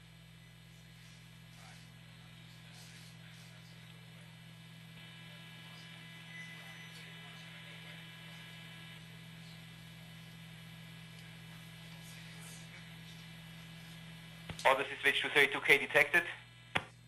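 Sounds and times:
electrical hum and buzz: 0.0 - 17.0.

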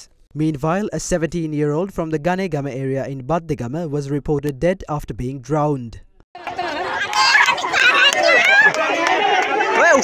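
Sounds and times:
crowd talking and calling out: 6.4 - 10.0.

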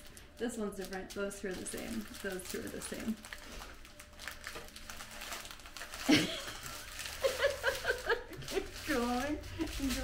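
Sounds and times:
plastic bags crinkling: 0.0 - 10.0
person laughing: 6.0 - 8.8.

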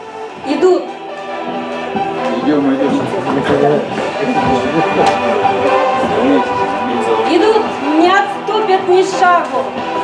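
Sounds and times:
guitar: 0.0 - 10.0
song over loudspeakers: 0.0 - 10.0.

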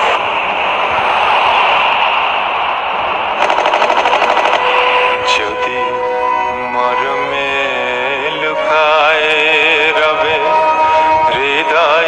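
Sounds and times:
machine-gun fire: 3.4 - 5.0.

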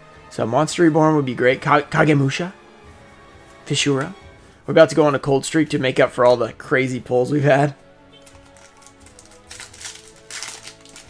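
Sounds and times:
quiet background music: 0.0 - 11.0
cards being handled: 8.1 - 11.0
foil wrapper crinkling: 8.2 - 11.0.

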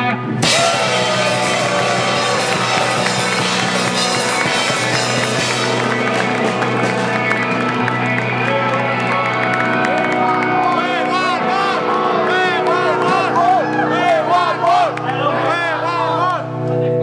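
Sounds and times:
rock band playing loudly: 0.0 - 15.2
crowd cheering: 0.4 - 16.5
hands clapping along: 0.5 - 11.5, 12.2 - 13.6, 14.6 - 15.2.

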